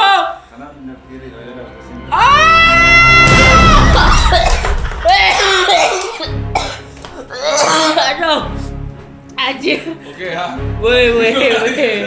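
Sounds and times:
background music: 0.0s - 12.0s
men laughing and shouting: 2.9s - 6.3s.

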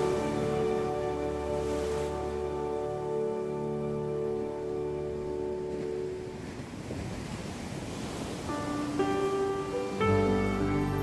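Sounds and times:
soft instrumental music: 0.0s - 6.8s, 8.3s - 11.0s
ocean surf washing in: 0.0s - 11.0s.

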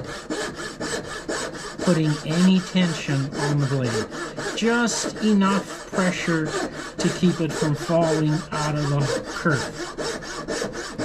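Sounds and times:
saw rasping through wood: 0.0s - 11.0s.

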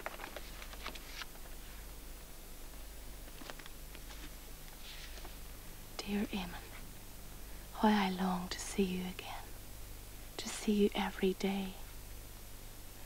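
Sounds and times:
low mains hum: 0.0s - 13.0s
person speaking softly: 6.0s - 6.8s, 7.8s - 9.5s, 10.4s - 11.8s.

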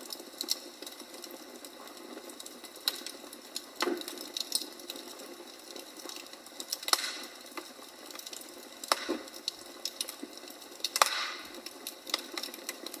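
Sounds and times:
logs crackling in a fireplace: 0.0s - 13.0s.

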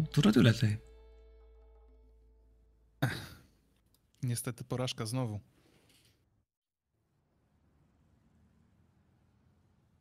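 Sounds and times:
person sighing: 3.0s - 3.6s.

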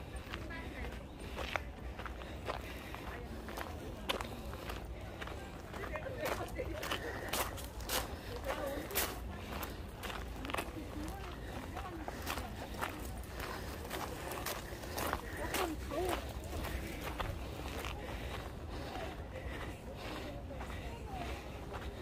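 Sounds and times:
footsteps walking: 0.0s - 22.0s
people talking in background: 0.0s - 22.0s.

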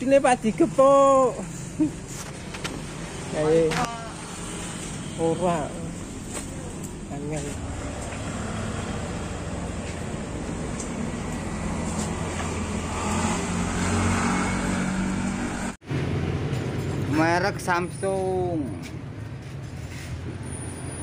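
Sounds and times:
vehicle engine rumbling: 0.0s - 21.0s.

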